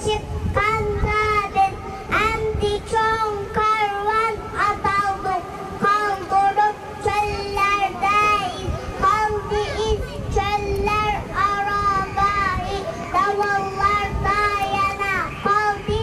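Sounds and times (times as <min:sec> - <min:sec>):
girl singing into microphone: 0:00.0 - 0:16.0.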